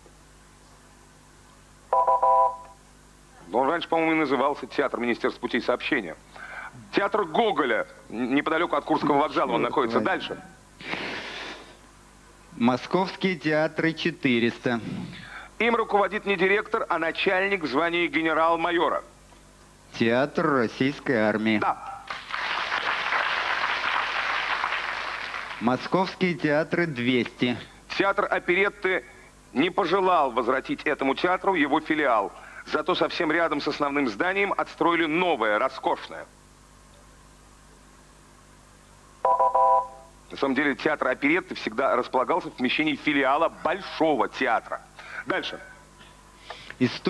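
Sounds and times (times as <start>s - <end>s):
electronic chord signal tone: 1.9s - 2.8s, 39.2s - 40.2s
audience applauding: 22.0s - 25.8s.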